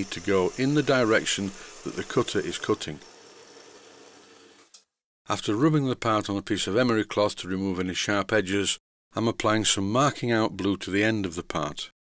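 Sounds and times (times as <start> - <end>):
milling machine humming: 0.0 - 4.7.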